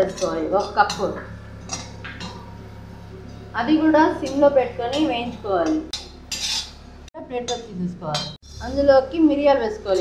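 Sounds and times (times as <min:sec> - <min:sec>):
low steady hum: 0:00.0 - 0:10.0
spatula scraping seeds in pan: 0:06.0 - 0:06.8.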